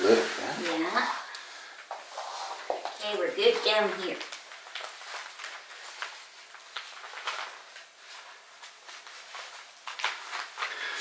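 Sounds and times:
fabric rustling on hardwood floor: 0:00.0 - 0:11.0.

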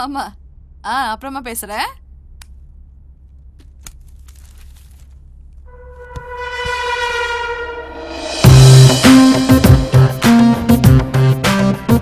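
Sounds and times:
held note with overtones: 0:05.7 - 0:11.4.

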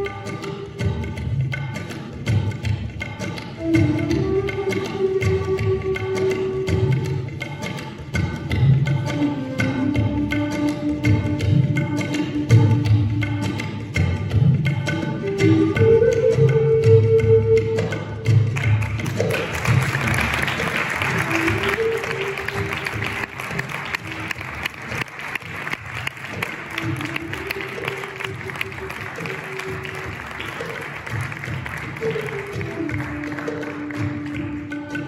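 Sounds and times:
slow melody with light percussion: 0:00.0 - 0:35.0
audience applauding: 0:18.6 - 0:34.7.

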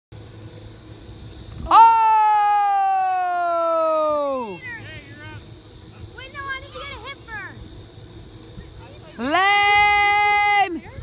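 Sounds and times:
child yelling: 0:01.7 - 0:05.0, 0:06.2 - 0:07.6.

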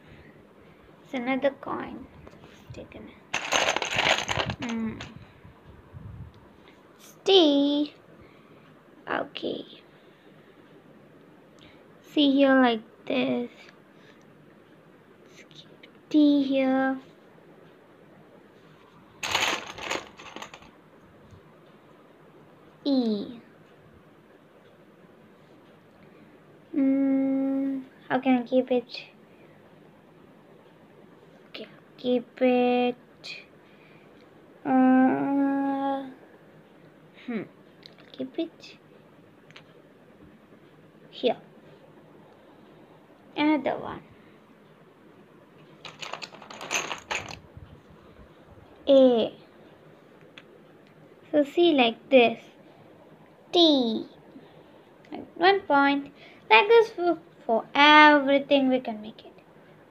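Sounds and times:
plastic tiles clicking: 0:19.2 - 0:20.7, 0:45.8 - 0:47.4.

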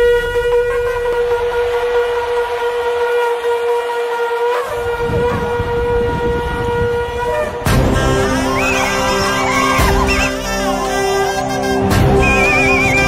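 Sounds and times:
long steady horn note: 0:00.0 - 0:13.0.

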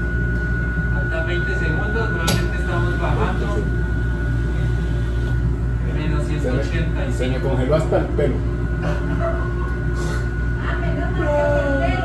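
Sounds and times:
low machine drone: 0:00.0 - 0:12.0.

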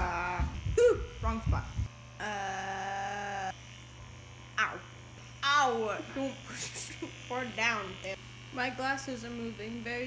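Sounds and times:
massage gun buzzing: 0:00.0 - 0:10.0.

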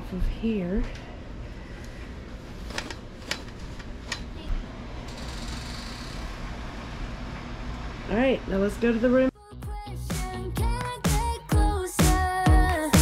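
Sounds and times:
low room hum: 0:00.0 - 0:09.4.

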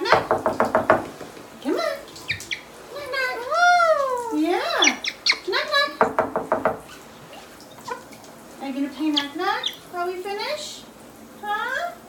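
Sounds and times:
knock-like taps: 0:00.0 - 0:01.4, 0:06.0 - 0:06.9
parrot making voice-like calls: 0:03.3 - 0:06.0.

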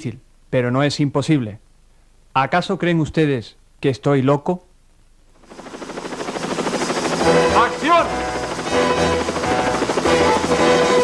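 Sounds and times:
helicopter rotor beating: 0:05.4 - 0:11.0
music of held tones: 0:06.7 - 0:11.0.

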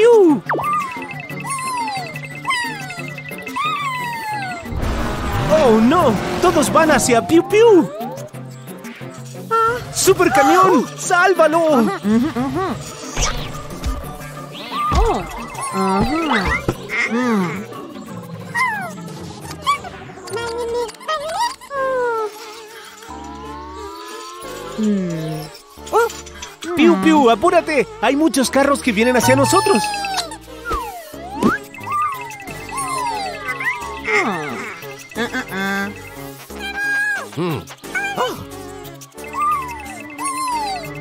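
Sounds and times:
cartoon background music: 0:00.0 - 0:41.0.

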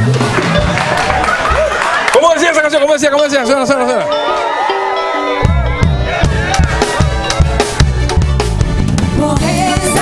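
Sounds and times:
walking bass guitar line: 0:00.0 - 0:02.0, 0:03.4 - 0:10.0
band playing upbeat music: 0:00.0 - 0:10.0
drum hits: 0:05.4 - 0:09.6.

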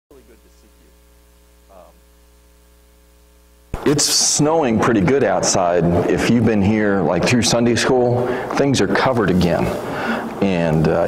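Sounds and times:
electrical mains hum: 0:00.1 - 0:11.0
man speaking loudly: 0:03.8 - 0:09.8, 0:10.4 - 0:11.0.

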